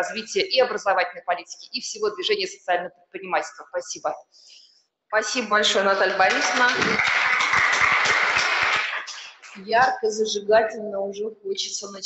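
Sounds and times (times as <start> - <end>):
audience applauding: 5.8 - 9.7.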